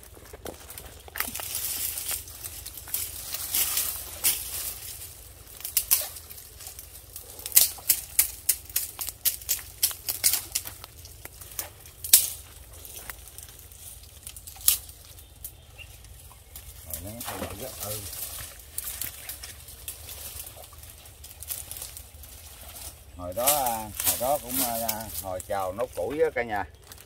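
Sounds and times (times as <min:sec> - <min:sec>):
dry branches snapping and crackling: 0:00.0 - 0:27.0.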